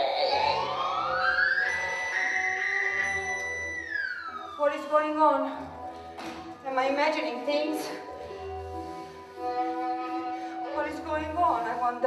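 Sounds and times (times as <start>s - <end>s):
electronic tone sliding upward: 0.0s - 4.6s.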